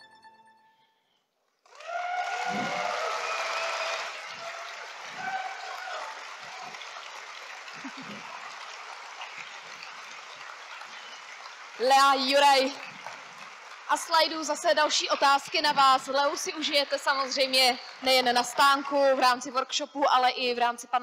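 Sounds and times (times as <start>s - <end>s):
audience applause: 1.5s - 19.5s.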